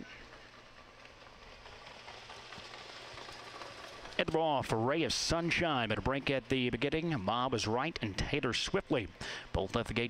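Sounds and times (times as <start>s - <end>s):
low hum of racetrack background: 0.0s - 10.0s.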